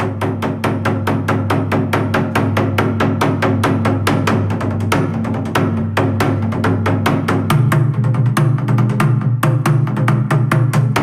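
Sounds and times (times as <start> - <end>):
shamisen sharp strokes: 0.0 - 7.8.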